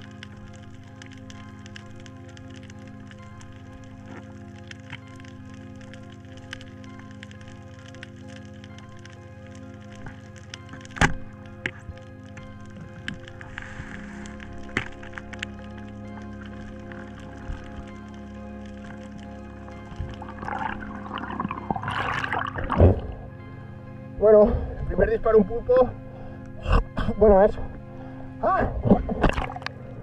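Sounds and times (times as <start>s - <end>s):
background music: 0.0s - 30.0s
underwater clicks: 7.2s - 23.3s, 28.8s - 29.8s.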